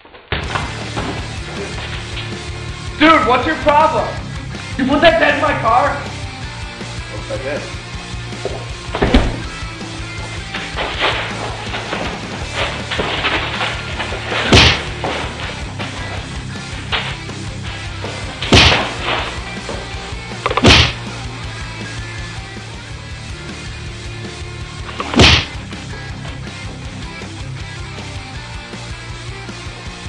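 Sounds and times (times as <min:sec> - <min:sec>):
background music: 0:00.4 - 0:30.0
loud punch whacks: 0:14.4 - 0:15.0, 0:18.4 - 0:19.3, 0:20.4 - 0:21.1, 0:25.0 - 0:25.6.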